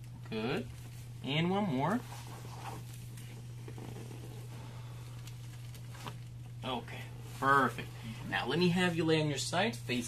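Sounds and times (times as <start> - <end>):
steady low hum: 0.0 - 10.0
clothing rustling on padded table: 5.4 - 8.9.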